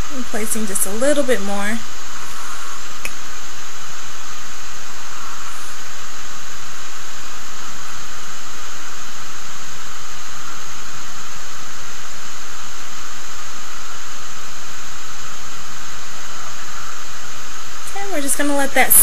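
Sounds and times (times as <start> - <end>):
loud steady hiss: 0.0 - 19.0.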